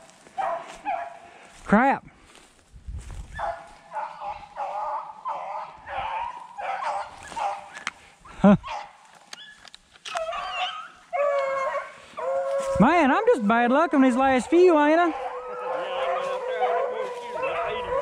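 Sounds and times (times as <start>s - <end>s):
dogs barking: 0.3s - 1.3s, 3.3s - 7.9s, 8.6s - 9.6s, 10.2s - 18.0s
dog howling: 3.5s - 7.7s, 10.1s - 18.0s.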